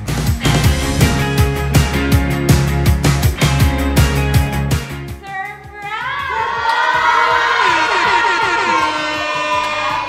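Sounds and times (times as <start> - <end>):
rock music: 0.0 - 5.2.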